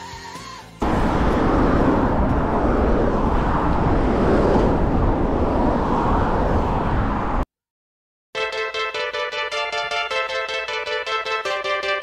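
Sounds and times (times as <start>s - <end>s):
bike ride rumble: 0.8s - 7.4s
road traffic: 0.8s - 7.4s
wind on microphone: 0.8s - 7.5s.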